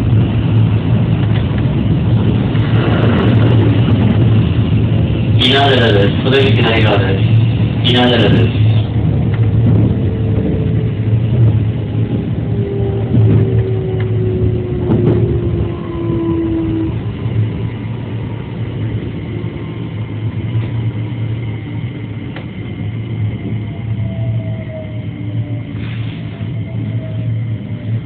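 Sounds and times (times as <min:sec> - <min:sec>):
train low rumble: 0:00.0 - 0:28.0
train motor whine: 0:08.0 - 0:17.7.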